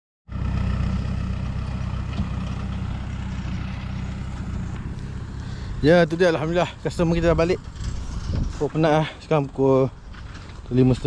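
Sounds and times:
lorry engine running: 0.3 - 11.0.

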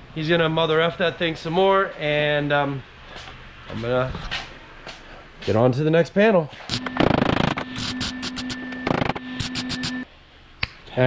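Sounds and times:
welding crackling and sputtering: 6.7 - 10.0
welder humming: 6.7 - 10.1.

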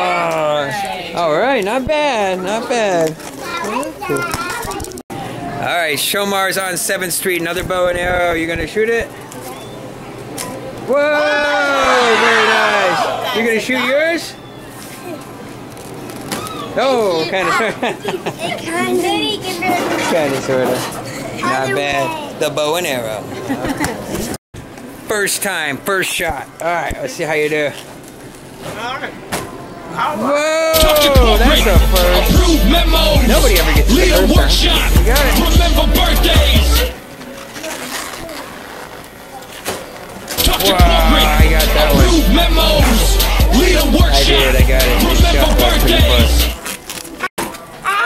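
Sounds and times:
restaurant background noise: 0.0 - 48.0
children's voices and chatter: 2.2 - 6.2, 9.1 - 11.0, 13.1 - 22.5, 30.7 - 48.0.

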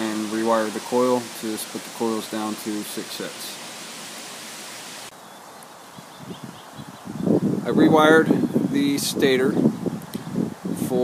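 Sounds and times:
wind through tree branches: 0.0 - 11.0.

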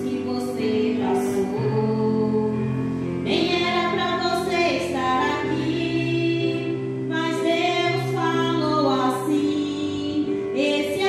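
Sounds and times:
backing track of held chords: 0.0 - 11.0
woman singing into a microphone: 0.0 - 11.0.

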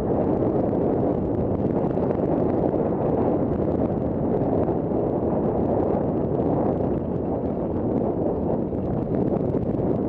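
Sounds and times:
wind rush on microphone: 0.0 - 10.0.

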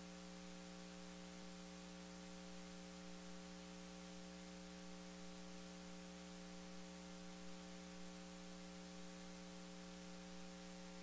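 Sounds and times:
background hiss: 0.0 - 11.0
electrical mains hum: 0.0 - 11.0.

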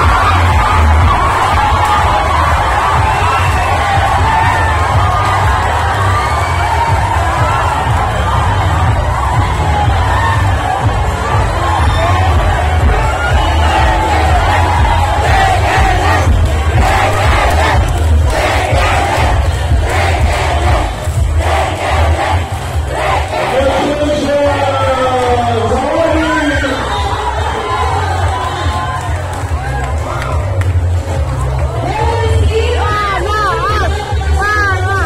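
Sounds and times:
large crowd cheering and shouting: 0.0 - 35.0.

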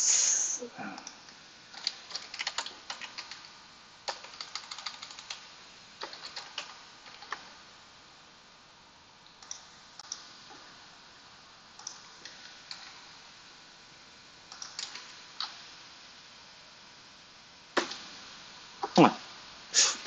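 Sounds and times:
keyboard typing: 1.7 - 3.5, 4.1 - 5.4, 6.0 - 7.6, 14.5 - 15.6.

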